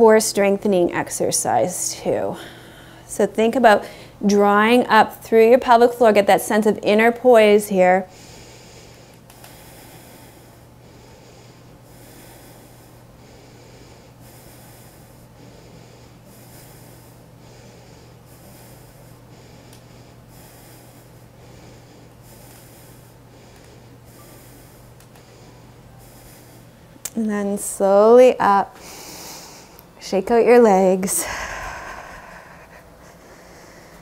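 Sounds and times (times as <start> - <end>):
steady low hum: 0.0 - 34.0
person breathing through nose: 8.1 - 26.9.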